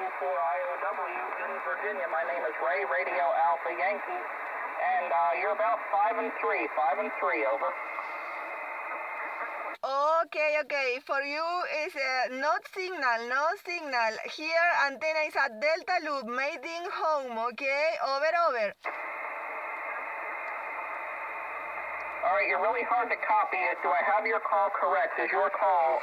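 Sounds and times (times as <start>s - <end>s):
radio static: 0.0s - 26.0s.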